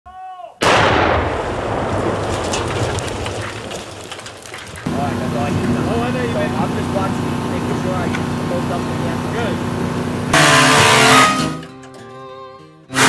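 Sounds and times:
loud explosion: 0.6 - 5.0
steady machine hum: 4.9 - 11.4.

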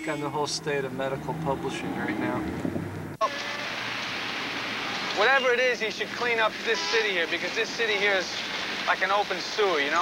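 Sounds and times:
road and traffic noise hiss: 0.0 - 10.0.

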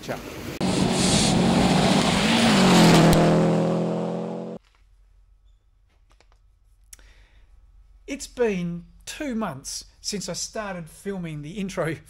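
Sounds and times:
loud rushing hiss: 0.4 - 2.4
rally car engine passing at speed: 0.6 - 4.6.

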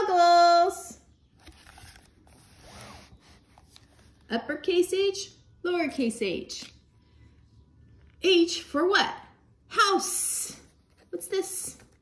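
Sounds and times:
cardboard page rustling: 1.4 - 4.3.

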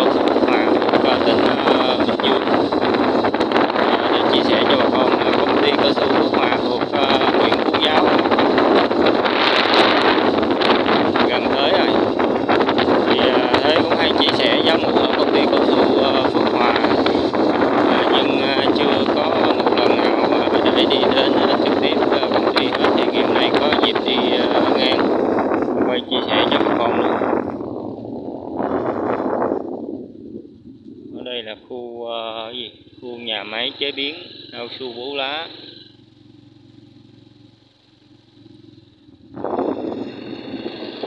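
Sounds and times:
wind buffeting a microphone: 0.0 - 35.7, 38.6 - 41.0.

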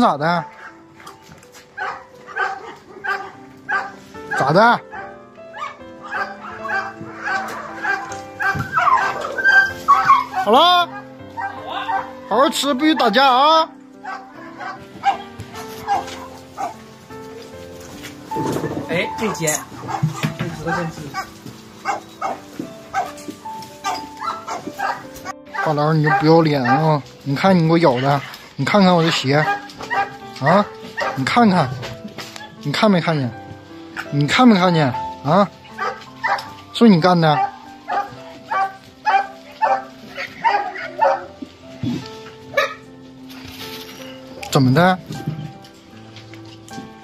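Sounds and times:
background music: 0.0 - 47.0
dog barking: 0.5 - 1.2, 1.8 - 13.2, 14.0 - 16.8, 19.5 - 23.2, 23.8 - 32.6, 35.7 - 36.6, 37.3 - 43.0.

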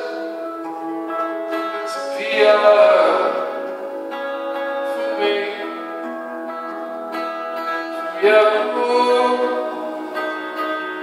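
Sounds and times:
acoustic guitar: 0.0 - 11.0
long held notes: 0.0 - 11.0.

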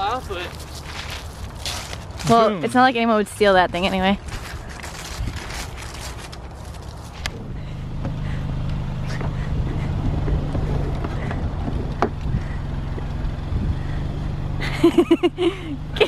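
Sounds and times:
car engine idling: 0.0 - 16.0
people laughing: 14.6 - 16.0.

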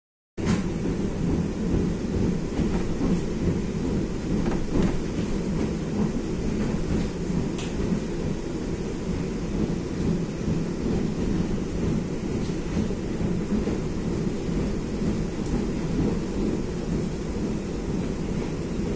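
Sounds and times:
electric train rumbling on rails: 0.4 - 18.9.

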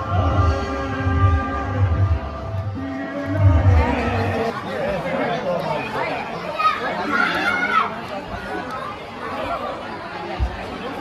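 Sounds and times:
people chatting in a hall: 0.0 - 11.0.

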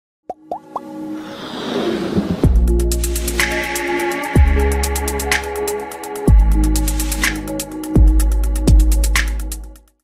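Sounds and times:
swell of noise: 1.0 - 2.8
intro music: 2.0 - 9.8.

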